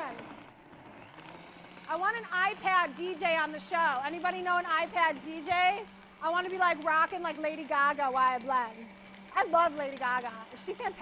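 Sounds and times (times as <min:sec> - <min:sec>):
blender running: 0:00.0 - 0:11.0.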